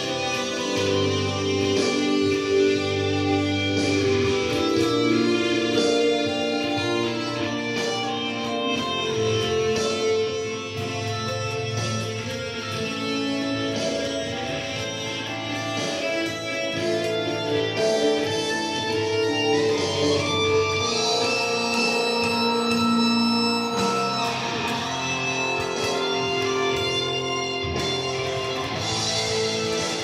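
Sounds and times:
electric guitar melody: 0:00.0 - 0:30.0.

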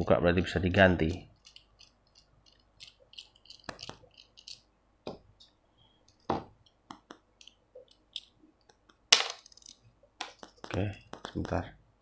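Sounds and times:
small metal clicks and taps: 0:01.0 - 0:04.6.

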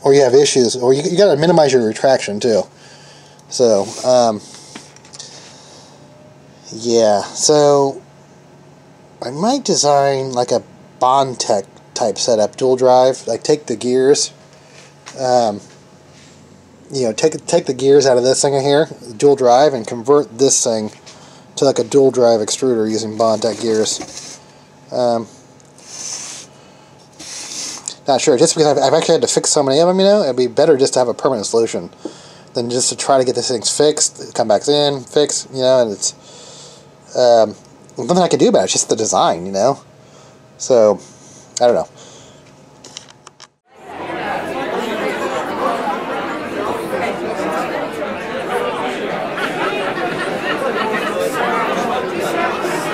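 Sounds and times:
close breathing: 0:02.7 - 0:06.1, 0:21.0 - 0:21.6, 0:32.0 - 0:32.5, 0:36.2 - 0:37.0, 0:41.0 - 0:42.5
crowd chatter: 0:43.7 - 0:52.9.

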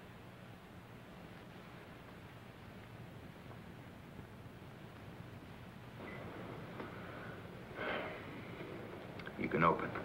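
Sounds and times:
film soundtrack hiss: 0:00.0 - 0:10.0
low hum: 0:00.0 - 0:10.0
breathy exhale: 0:06.8 - 0:08.7.

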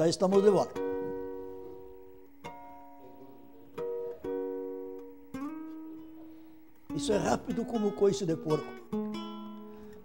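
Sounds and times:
guitar chords ringing: 0:00.0 - 0:10.0.

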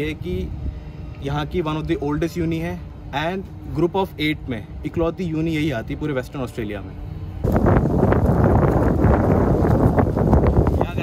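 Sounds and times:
wind buffeting microphone: 0:00.0 - 0:02.6, 0:07.2 - 0:11.0.

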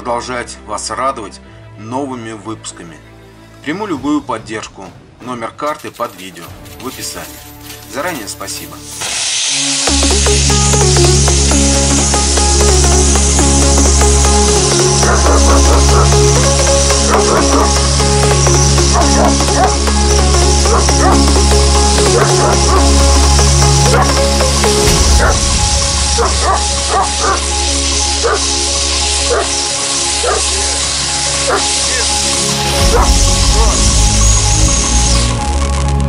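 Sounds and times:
firework fountain hissing: 0:08.8 - 0:35.8
electronic music with bass line: 0:09.6 - 0:36.0
dog barking: 0:15.0 - 0:16.1, 0:25.1 - 0:25.4, 0:26.1 - 0:27.4, 0:28.2 - 0:28.5, 0:29.3 - 0:29.6, 0:30.2 - 0:30.8, 0:31.5 - 0:32.1, 0:32.9 - 0:33.8.

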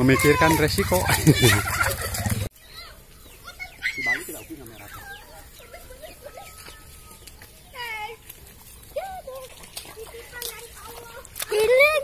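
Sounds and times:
children shouting and squealing: 0:00.0 - 0:12.0
quiet outdoor background: 0:00.0 - 0:12.0.

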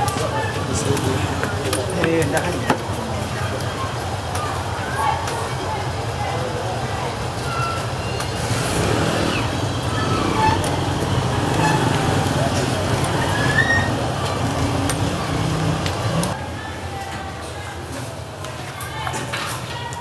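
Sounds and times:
people's voices: 0:00.0 - 0:20.0
low outdoor rumble: 0:08.4 - 0:17.7.

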